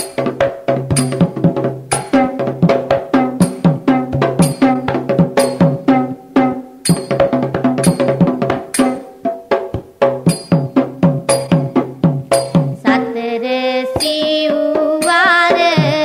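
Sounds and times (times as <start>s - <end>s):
drums playing brisk strokes: 0.0s - 16.0s
held wavering melody: 0.9s - 9.2s.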